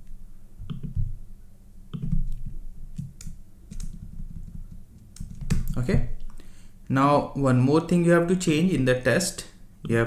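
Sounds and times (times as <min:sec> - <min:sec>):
low steady hum: 0:00.0 - 0:10.0
computer keyboard keys pressed: 0:00.6 - 0:01.1, 0:01.9 - 0:05.8.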